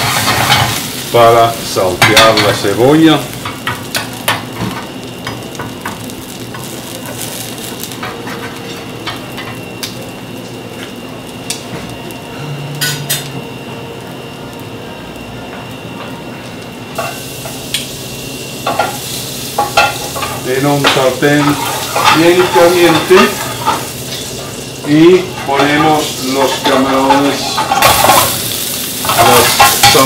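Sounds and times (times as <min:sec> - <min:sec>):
potatoes sizzling in a pan: 0:00.0 - 0:13.4, 0:14.2 - 0:30.0.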